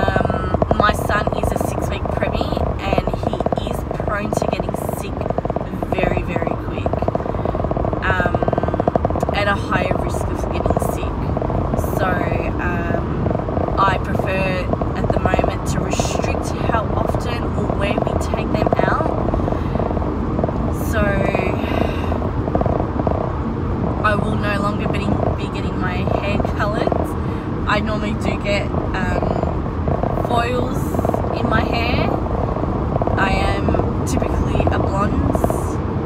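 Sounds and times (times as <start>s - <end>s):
woman talking: 0.0s - 7.4s, 8.0s - 13.2s, 13.8s - 19.2s, 20.7s - 22.2s, 24.0s - 29.6s, 30.2s - 32.2s, 33.2s - 35.8s
car engine and road noise: 0.0s - 36.0s.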